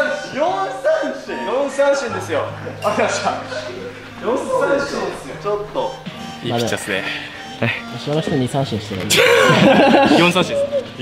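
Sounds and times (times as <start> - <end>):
background music: 0.0 - 11.0
men talking: 0.0 - 11.0.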